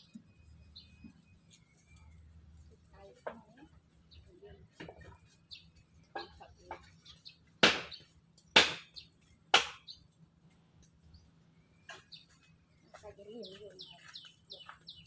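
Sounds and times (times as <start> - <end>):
faint bird chirps: 0.0 - 8.1, 11.0 - 15.0.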